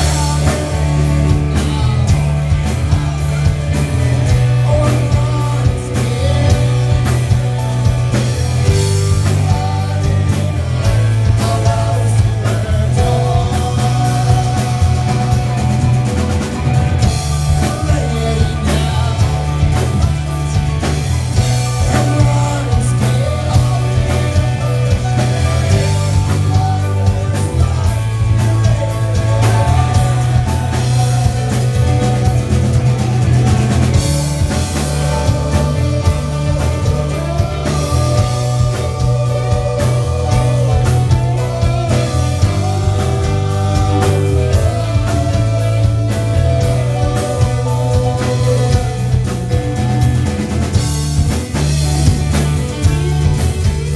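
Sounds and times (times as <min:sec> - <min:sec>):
drum and cymbal strikes: 0:00.0 - 0:53.9
rock band playing live: 0:00.0 - 0:53.9.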